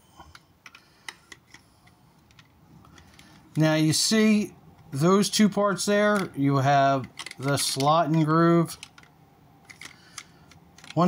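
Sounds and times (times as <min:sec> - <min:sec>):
plastic toy parts clicking: 0:07.0 - 0:11.0.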